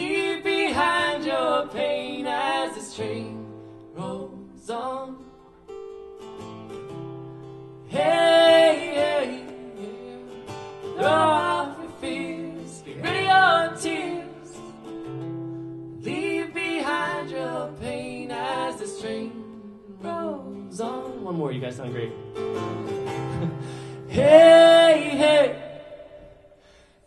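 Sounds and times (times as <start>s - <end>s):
woman singing: 0.0s - 5.3s, 7.9s - 10.4s, 11.0s - 14.8s, 16.0s - 21.2s, 24.1s - 26.2s
strummed acoustic guitar: 0.0s - 26.8s
man singing: 24.0s - 26.0s.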